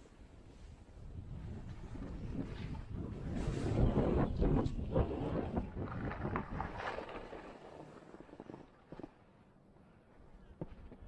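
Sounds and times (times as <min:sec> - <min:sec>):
wind buffeting microphone: 0:00.7 - 0:07.4
skis scraping on snow: 0:01.6 - 0:09.2.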